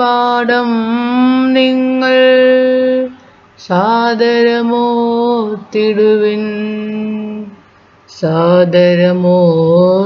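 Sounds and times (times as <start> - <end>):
person singing slow devotional song: 0.0 - 10.0.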